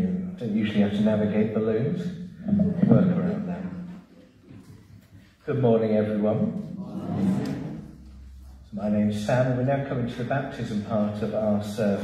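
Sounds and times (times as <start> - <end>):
man talking over a microphone: 0.0 - 3.8, 5.4 - 6.8, 8.7 - 12.0.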